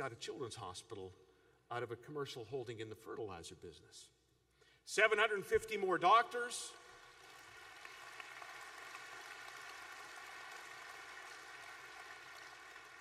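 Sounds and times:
audience applauding: 6.8 - 13.0.

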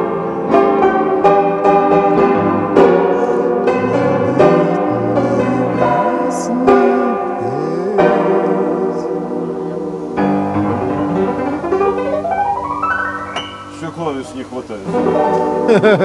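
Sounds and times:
upright piano playing: 0.0 - 16.0.

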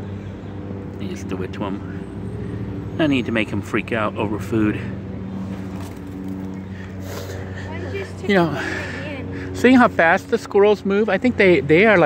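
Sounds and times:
engine humming steadily: 0.0 - 12.0.

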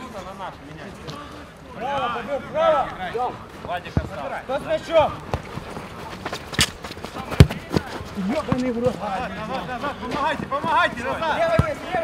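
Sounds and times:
football being kicked: 6.5 - 9.0, 11.4 - 11.9.

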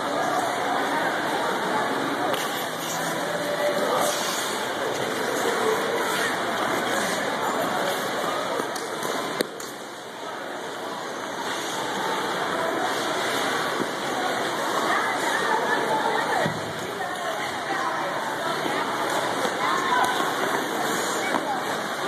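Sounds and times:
skate blades on ice: 2.3 - 9.8.

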